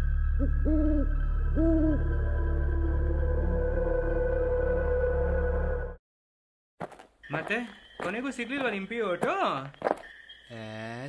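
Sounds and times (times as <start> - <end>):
owl hooting: 0.3 - 2.4.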